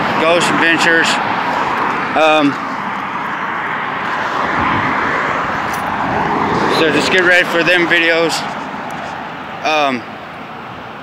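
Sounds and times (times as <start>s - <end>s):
road traffic passing: 0.0s - 11.0s
man's voice: 2.1s - 2.6s, 6.7s - 8.4s, 9.6s - 10.1s.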